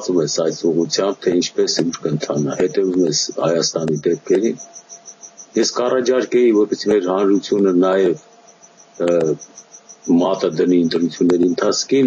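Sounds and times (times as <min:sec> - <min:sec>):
man speaking over video call: 0:00.0 - 0:04.6, 0:05.6 - 0:08.2, 0:09.0 - 0:09.4, 0:10.1 - 0:12.0
high-pitched pulsing hiss: 0:00.0 - 0:12.0.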